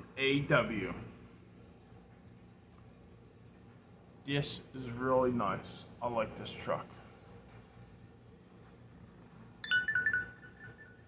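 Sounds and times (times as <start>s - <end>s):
electronic notification chime: 9.6s - 11.0s.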